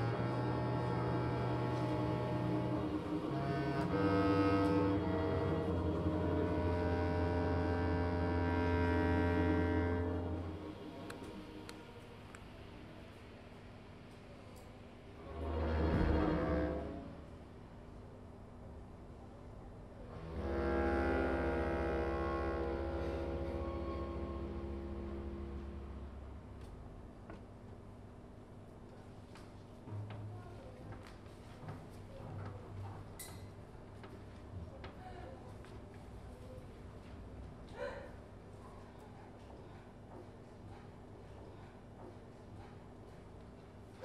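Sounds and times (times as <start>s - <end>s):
orchestra playing sustained chords: 0.0s - 12.5s, 20.1s - 26.4s.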